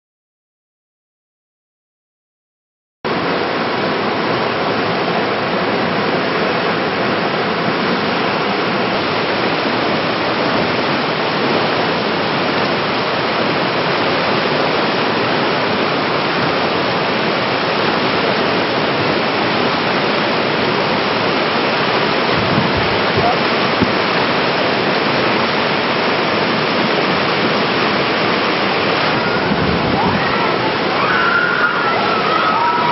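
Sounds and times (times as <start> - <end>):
river rapids rushing: 3.1 - 32.9.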